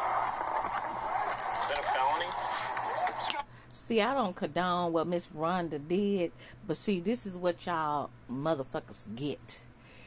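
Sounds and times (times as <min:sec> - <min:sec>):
muffled voices: 0:00.0 - 0:03.5.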